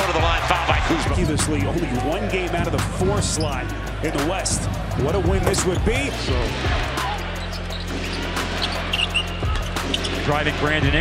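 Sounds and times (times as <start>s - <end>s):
crowd noise: 0.0s - 11.0s
music with steady bass line: 0.0s - 11.0s.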